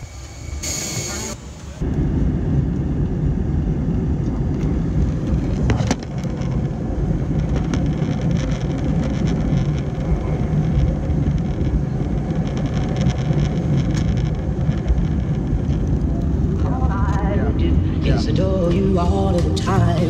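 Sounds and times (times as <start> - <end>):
jet engines roaring at takeoff: 0.0 - 7.9.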